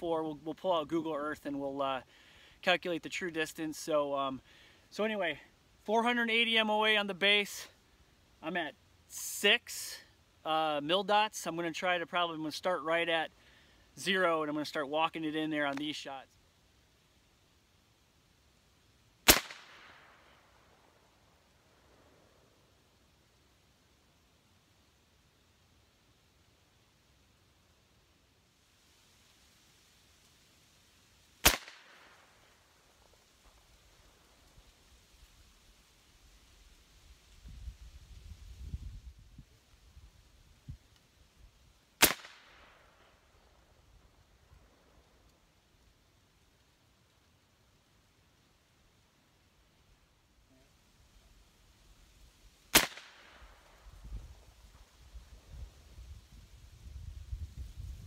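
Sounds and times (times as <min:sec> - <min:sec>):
air rifle shots: 0:19.2 - 0:20.2, 0:31.4 - 0:32.2, 0:42.0 - 0:42.8, 0:52.7 - 0:53.5.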